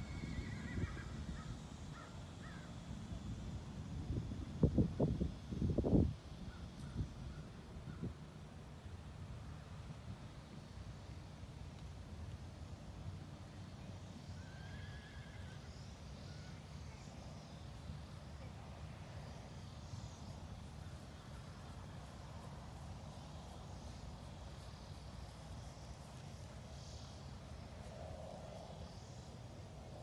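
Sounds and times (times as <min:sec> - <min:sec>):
horse whinnying: 0:00.0 - 0:01.1
faint horse whinny: 0:00.0 - 0:01.2, 0:14.4 - 0:15.7.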